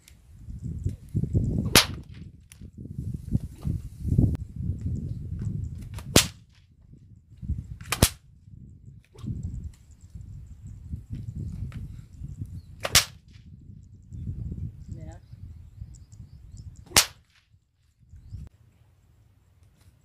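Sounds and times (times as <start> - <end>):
whip cracking: 1.6 - 2.2, 5.9 - 6.6, 7.8 - 8.2, 12.8 - 13.4, 16.9 - 17.4.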